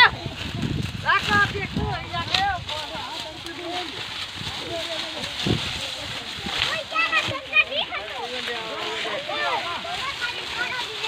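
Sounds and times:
children calling and chattering: 0:00.0 - 0:11.0
dry leaves rustling: 0:00.0 - 0:11.0.

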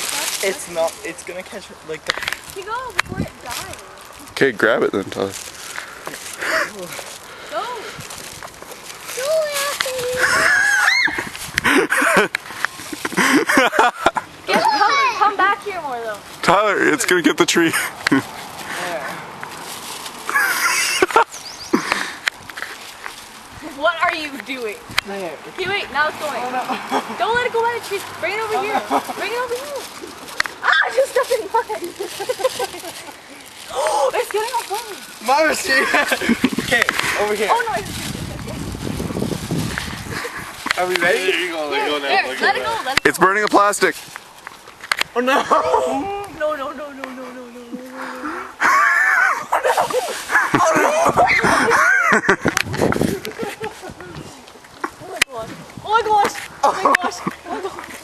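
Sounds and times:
people talking: 0:09.2 - 0:10.9, 0:14.5 - 0:17.9, 0:23.6 - 0:29.8, 0:30.6 - 0:32.1, 0:33.7 - 0:38.7, 0:40.7 - 0:44.0, 0:49.6 - 0:52.6, 0:55.0 - 0:57.8
people laughing: 0:10.1 - 0:15.4, 0:20.3 - 0:22.2, 0:26.6 - 0:27.3, 0:28.6 - 0:30.2, 0:31.3 - 0:33.4, 0:35.4 - 0:37.2, 0:45.2 - 0:46.2, 0:48.3 - 0:54.3, 0:56.6 - 0:58.0
excited shrieks: 0:10.2 - 0:11.3, 0:30.6 - 0:31.0, 0:48.6 - 0:49.7
low vocal cry: 0:47.9 - 0:52.1.

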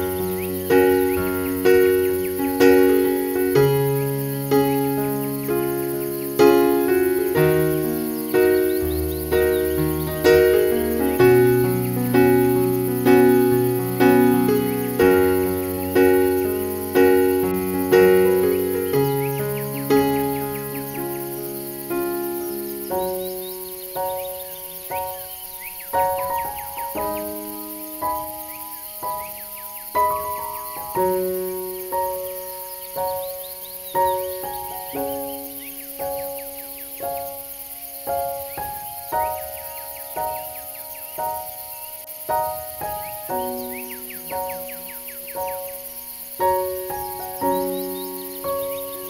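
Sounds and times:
faint bird chirps: 0:00.0 - 0:49.0
slow piano-like keyboard music: 0:00.0 - 0:49.0.

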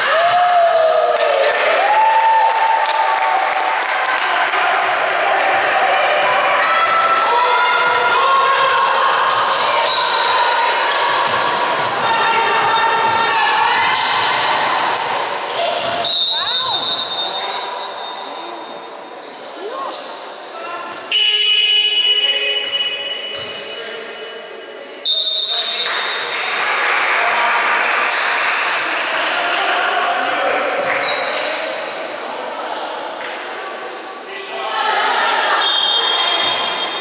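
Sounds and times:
players' voices: 0:03.3 - 0:37.0
sneakers squeaking: 0:04.8 - 0:05.6, 0:08.8 - 0:26.5
basketball bouncing: 0:11.2 - 0:14.3, 0:15.8 - 0:16.0
referee whistle blasts: 0:16.0 - 0:17.6, 0:21.1 - 0:23.8, 0:25.0 - 0:25.9.

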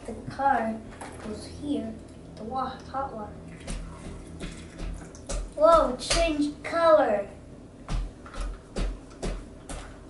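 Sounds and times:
child's voice: 0:00.0 - 0:03.4, 0:05.6 - 0:07.4
water sloshing and splashing: 0:00.9 - 0:06.2.

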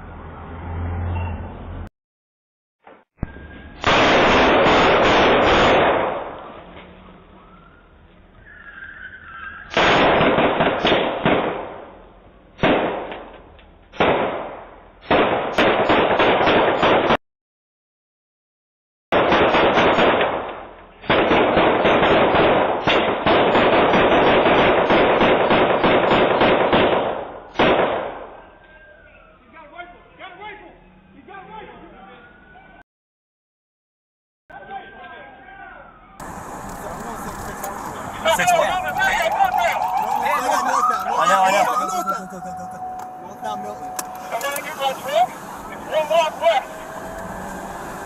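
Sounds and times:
rapid gunfire: 0:09.8 - 0:11.8, 0:15.1 - 0:17.2, 0:19.1 - 0:20.5, 0:21.1 - 0:28.2.

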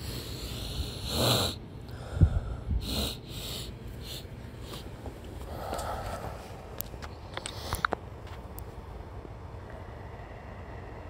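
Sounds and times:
person breathing heavily: 0:00.0 - 0:06.7.

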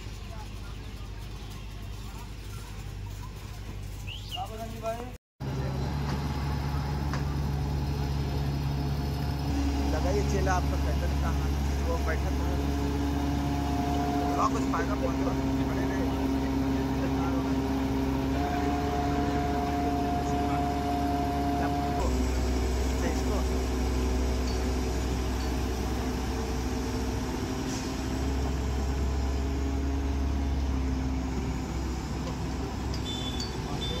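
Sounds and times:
engine hum: 0:00.0 - 0:34.0
held tones: 0:32.8 - 0:34.0.

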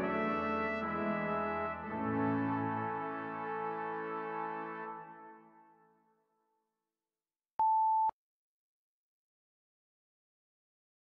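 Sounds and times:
electronic beep: 0:07.6 - 0:08.1.

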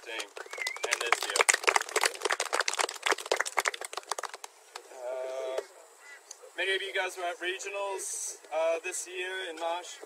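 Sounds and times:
people clapping: 0:00.0 - 0:04.9.

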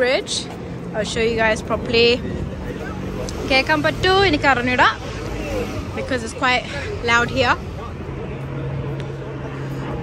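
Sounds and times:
slow-moving road traffic: 0:00.0 - 0:10.0.

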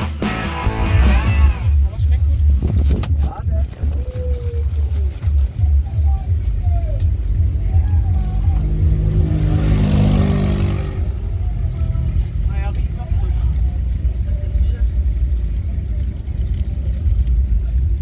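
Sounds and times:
faint voices: 0:00.7 - 0:09.8, 0:10.4 - 0:18.0
motor vehicle passing: 0:04.0 - 0:18.0.

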